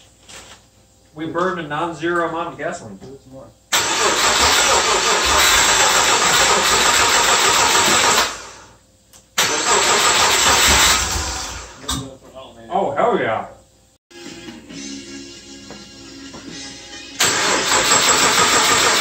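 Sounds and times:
engine cranking on starter: 0:03.7 - 0:08.7, 0:09.4 - 0:11.8, 0:17.2 - 0:19.0.

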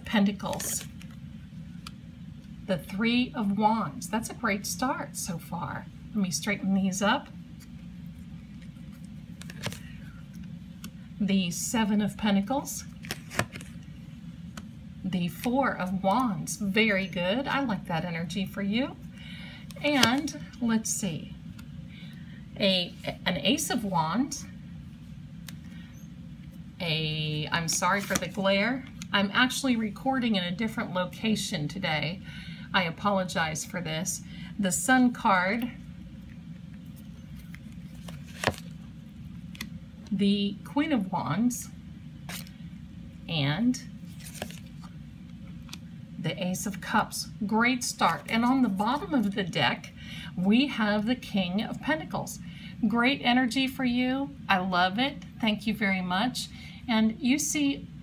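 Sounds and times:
steady low hum: 0:00.0 - 0:58.0
playing cards clicking and flicking: 0:08.6 - 0:10.0, 0:13.0 - 0:13.8, 0:27.9 - 0:28.4, 0:37.4 - 0:38.8, 0:44.1 - 0:45.0.

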